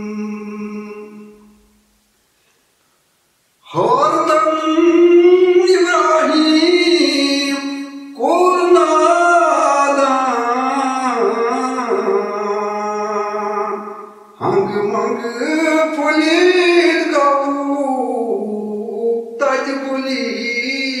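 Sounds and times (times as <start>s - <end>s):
man singing solo: 3.6s - 21.0s.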